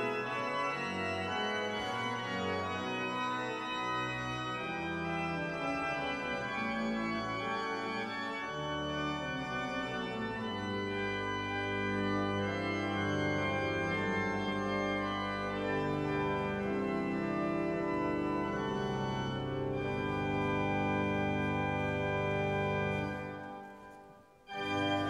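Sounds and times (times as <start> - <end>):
church organ chords: 0.0 - 25.0.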